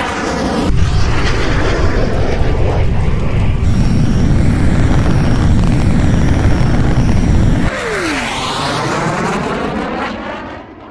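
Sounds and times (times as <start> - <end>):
jet aircraft rumble: 0.0 - 10.9.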